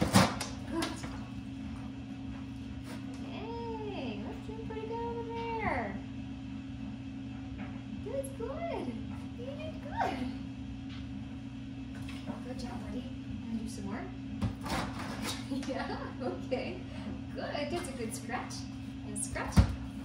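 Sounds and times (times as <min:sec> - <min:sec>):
steady electrical hum: 0:00.0 - 0:20.0.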